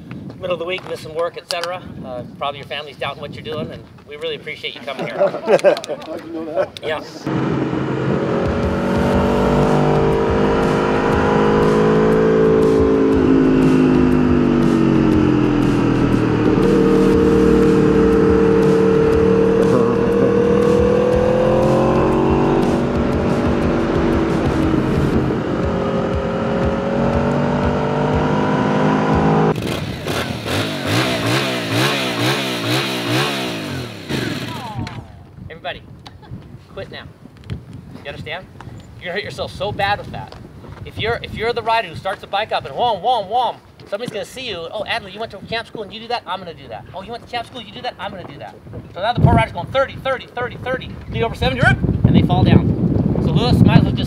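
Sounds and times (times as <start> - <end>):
motorcycle engine revving: 7.2 - 35.0.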